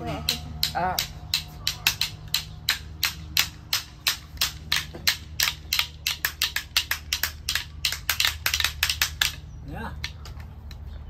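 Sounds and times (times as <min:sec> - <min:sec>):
wooden clapper rattle clacking: 0:00.0 - 0:10.9.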